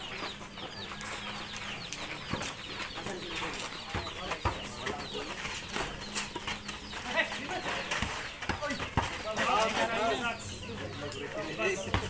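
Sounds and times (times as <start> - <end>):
chickens clucking: 0.0 - 12.0
basketball bouncing on dirt: 3.7 - 9.8, 11.7 - 12.0.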